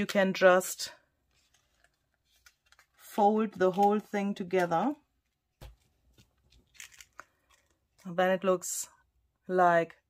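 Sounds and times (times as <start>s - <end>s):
paper rustling and clicks: 1.4s - 5.0s, 5.6s - 8.1s.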